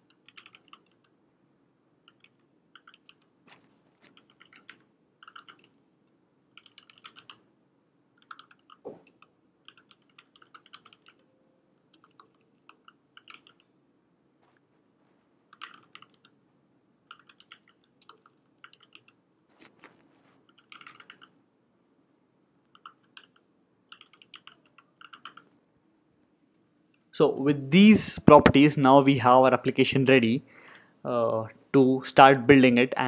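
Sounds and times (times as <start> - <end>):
computer keyboard typing: 0.0 - 1.2, 2.0 - 5.8, 6.5 - 7.5, 8.1 - 13.8, 15.5 - 16.4, 17.0 - 21.4, 22.6 - 25.6.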